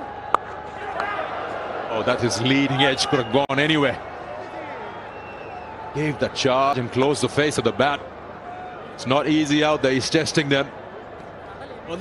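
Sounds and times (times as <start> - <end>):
stadium crowd murmur: 0.0 - 12.0
cricket bat striking ball: 0.3 - 1.2.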